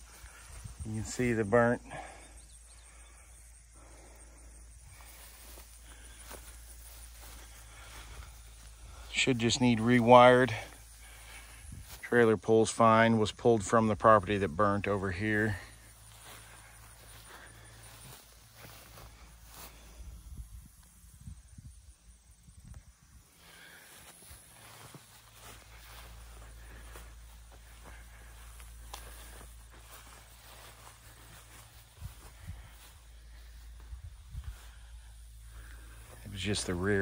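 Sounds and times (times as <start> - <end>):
footsteps through grass: 0.0 - 2.2, 2.8 - 21.1, 22.2 - 37.0
wind rumble on microphone: 20.0 - 23.2, 33.8 - 34.8.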